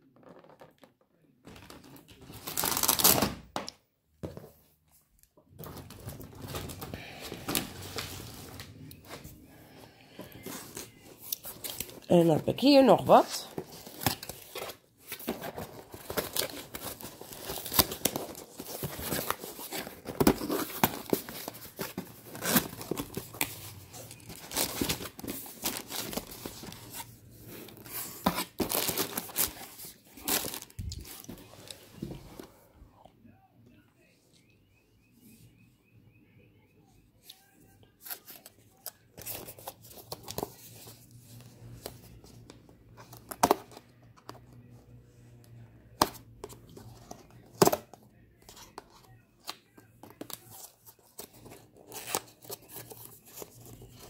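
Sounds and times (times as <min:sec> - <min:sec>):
cardboard box being opened: 0:13.5 - 0:27.1, 0:27.7 - 0:31.8.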